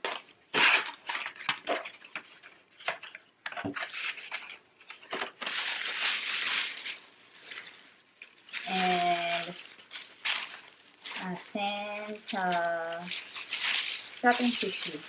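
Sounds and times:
paper rustling: 0:00.0 - 0:15.0
cardboard box crackling: 0:11.6 - 0:15.0.

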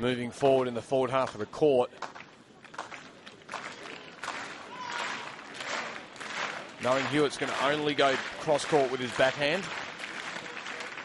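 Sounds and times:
crowd murmur: 0:02.4 - 0:11.0.

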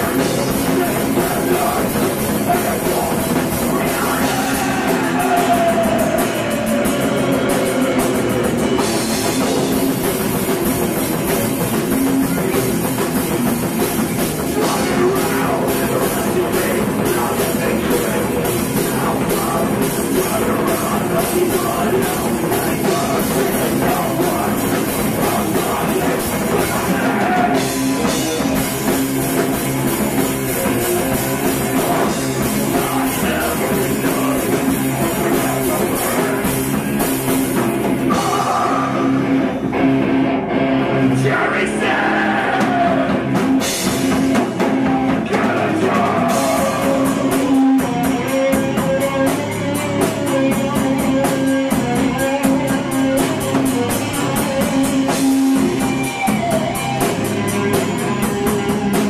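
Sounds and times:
drum kit: 0:00.0 - 0:59.0
electric guitars: 0:00.0 - 0:59.0
live rock band playing: 0:00.0 - 0:59.0.

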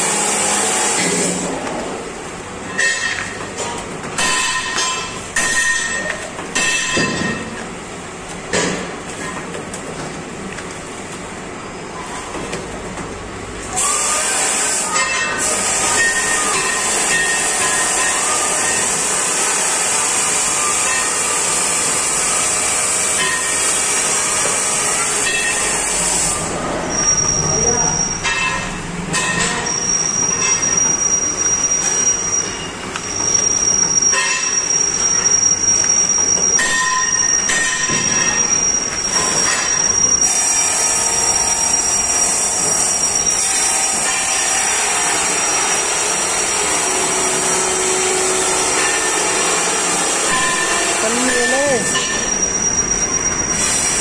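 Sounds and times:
machine metallic clatter and hiss: 0:00.0 - 0:54.0.

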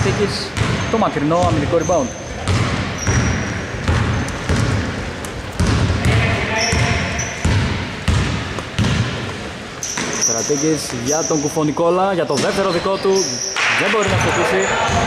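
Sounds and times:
basketball bouncing on hardwood: 0:00.0 - 0:01.7, 0:02.4 - 0:09.3
sneaker squeaks: 0:00.0 - 0:15.0
players' voices: 0:04.8 - 0:08.0, 0:09.0 - 0:15.0.

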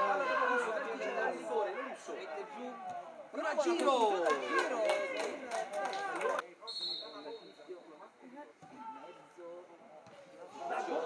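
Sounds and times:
referee's whistle: 0:06.7 - 0:07.6.

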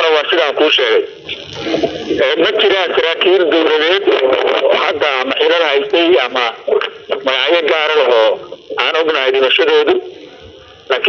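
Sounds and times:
person talking radio-like: 0:00.0 - 0:11.0.

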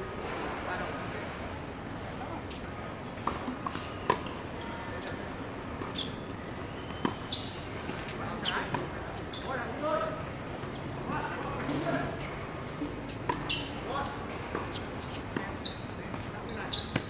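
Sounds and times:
players' voices: 0:07.7 - 0:17.0.

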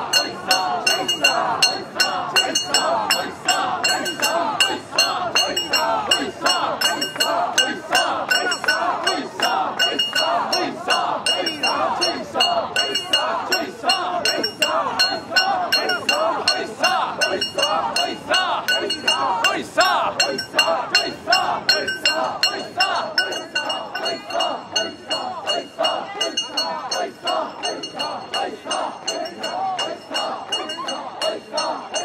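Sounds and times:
people chanting in unison: 0:00.0 - 0:32.0
metal rings jangling: 0:21.3 - 0:24.8.

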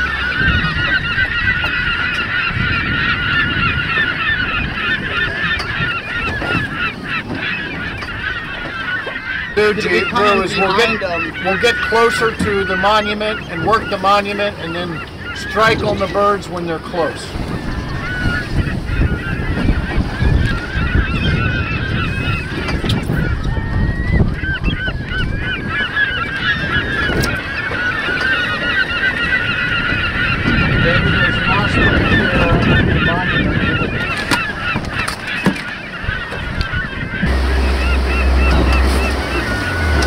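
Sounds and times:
boat engine humming: 0:00.0 - 0:40.0
seabirds calling: 0:00.0 - 0:40.0
water noise: 0:00.0 - 0:40.0
wind: 0:00.0 - 0:40.0.

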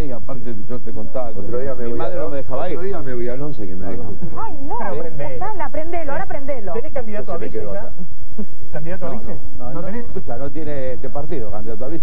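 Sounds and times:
man talking: 0:00.0 - 0:05.6, 0:07.2 - 0:12.0.

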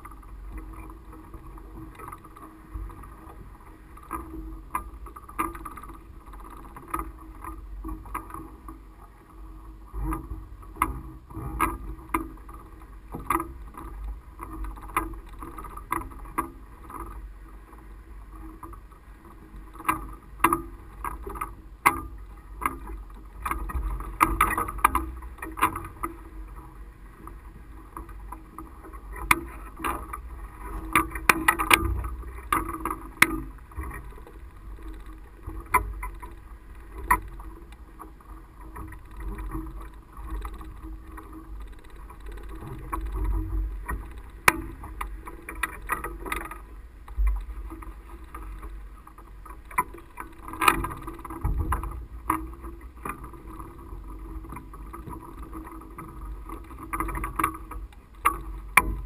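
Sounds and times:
low wind rumble: 0:00.0 - 0:57.0.

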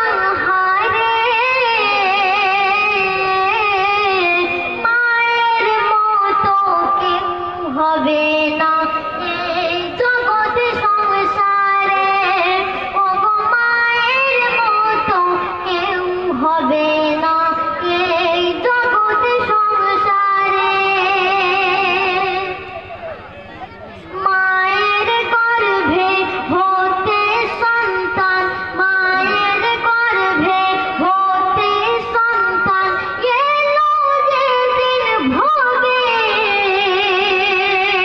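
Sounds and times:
boy singing into a microphone: 0:00.0 - 0:22.8, 0:24.0 - 0:38.0.

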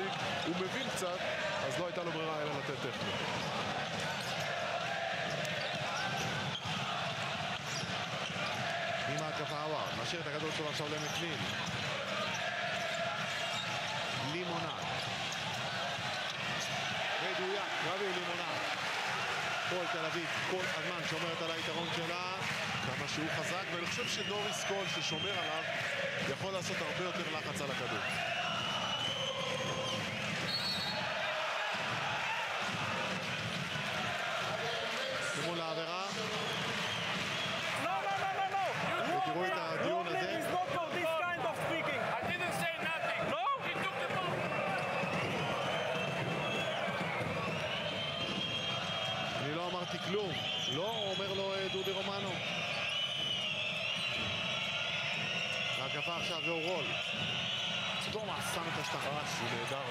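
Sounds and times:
crowd shouting: 0:00.0 - 0:10.2, 0:10.8 - 0:59.9.

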